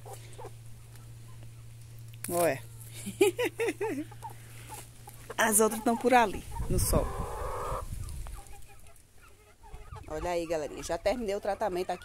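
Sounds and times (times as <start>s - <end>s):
faint hen clucks: 0.0s - 1.8s, 4.0s - 12.0s
hen calling: 4.0s - 12.0s.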